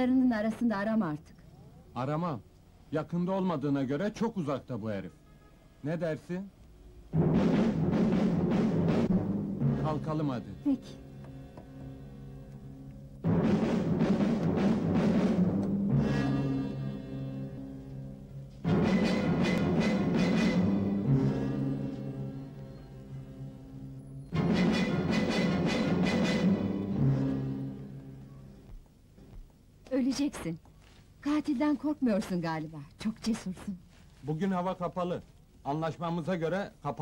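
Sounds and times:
film music with regular beat: 0:07.1 - 0:22.7, 0:24.3 - 0:29.8
orchestral sting with timpani: 0:07.2 - 0:10.7, 0:13.2 - 0:17.7, 0:18.6 - 0:23.2, 0:24.3 - 0:28.2.

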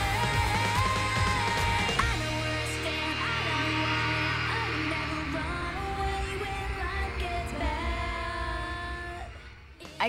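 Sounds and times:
woman singing into a microphone: 0:00.0 - 0:09.4.

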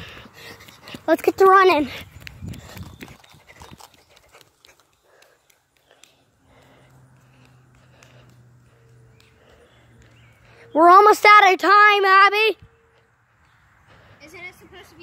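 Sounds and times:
running footsteps on asphalt: 0:00.0 - 0:15.0.

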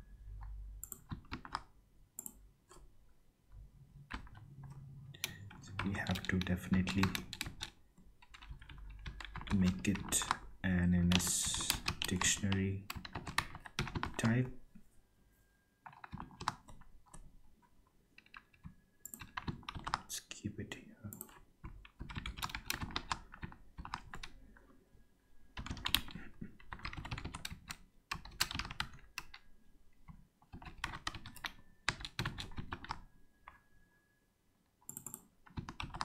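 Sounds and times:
computer keyboard typing: 0:00.3 - 0:02.9, 0:04.0 - 0:14.5, 0:15.8 - 0:17.3, 0:18.1 - 0:20.1, 0:21.1 - 0:24.4, 0:25.5 - 0:29.5, 0:30.1 - 0:33.7, 0:34.8 - 0:36.0.

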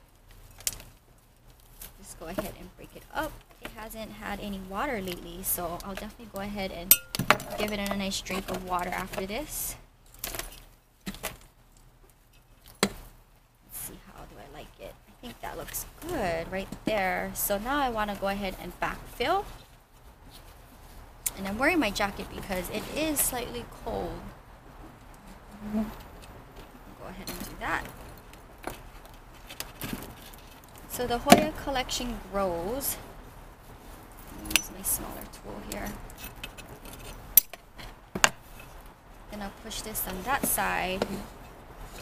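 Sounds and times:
faint background hiss: 0:00.0 - 0:42.0.

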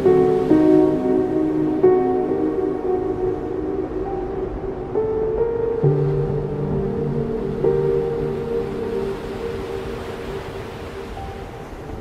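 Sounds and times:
slow ambient music chords: 0:00.0 - 0:12.0
stormy sea rushing: 0:00.0 - 0:12.0.

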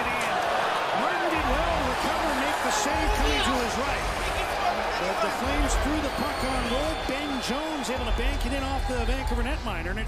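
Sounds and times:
arena crowd noise: 0:00.0 - 0:10.0
man's voice: 0:01.0 - 0:10.0.

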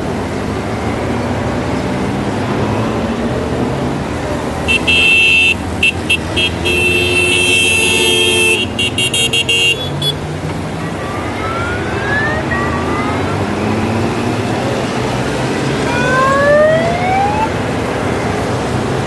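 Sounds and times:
motorcycle engines passing: 0:00.0 - 0:19.0
motorcycle horns tooting: 0:04.7 - 0:10.2.

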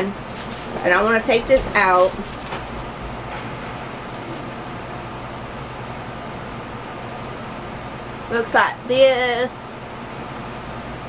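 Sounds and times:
air conditioner running: 0:00.0 - 0:11.0
electric fans humming: 0:00.0 - 0:11.0.

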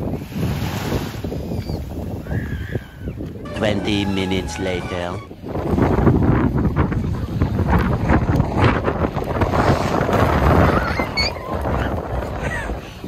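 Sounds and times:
small waves washing onto shore: 0:00.0 - 0:02.3
wind buffeting microphone: 0:00.0 - 0:13.0.

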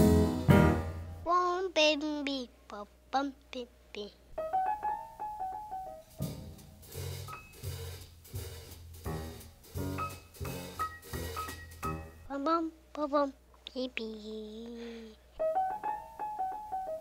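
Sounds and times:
jazz combo playing: 0:00.0 - 0:01.3, 0:04.4 - 0:12.4, 0:15.4 - 0:17.0.

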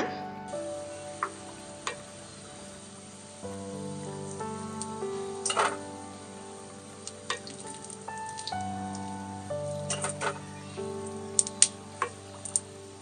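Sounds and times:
background music of held notes: 0:00.0 - 0:13.0.

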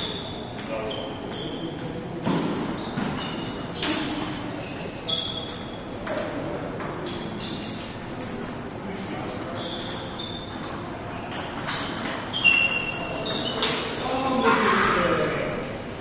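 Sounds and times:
table tennis balls clicking: 0:09.7 - 0:14.2.

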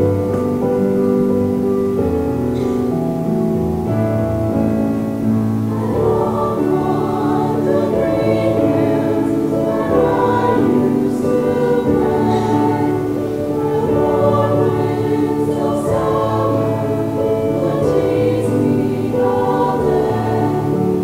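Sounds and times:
mixed choir singing: 0:05.6 - 0:21.0.

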